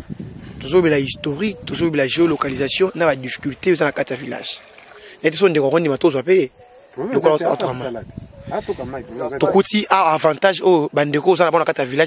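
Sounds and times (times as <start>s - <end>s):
people talking: 0.6s - 4.6s, 5.2s - 12.0s.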